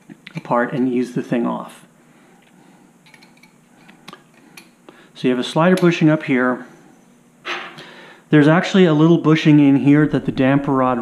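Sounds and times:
metal parts clicking and clinking: 3.0s - 3.6s.

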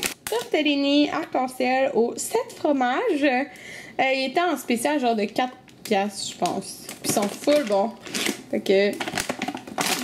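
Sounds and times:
plastic bag crinkling: 0.0s - 0.6s, 5.7s - 10.0s.

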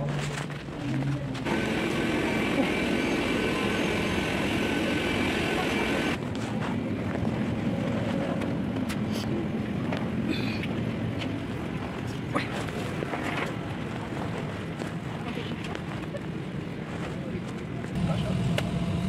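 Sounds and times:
passengers murmuring: 0.0s - 18.6s
aircraft ventilation hum: 0.2s - 19.0s.

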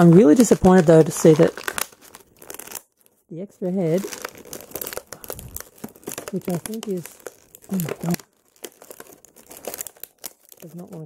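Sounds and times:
plastic blister tray crinkling: 0.0s - 11.0s.

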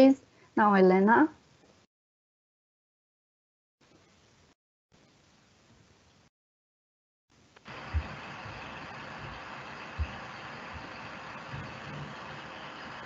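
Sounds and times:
microphone hiss and hum: 3.8s - 6.3s, 7.3s - 13.0s
dull low thumps: 7.7s - 12.8s.

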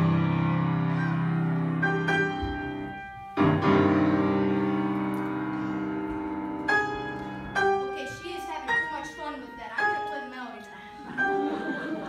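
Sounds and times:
piano duet held chords: 0.0s - 12.0s.

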